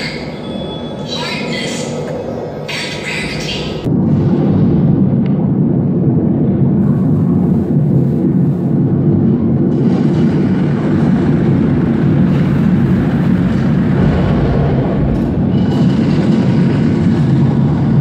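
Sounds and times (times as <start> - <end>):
low rumble over loudspeakers: 1.9 - 18.0.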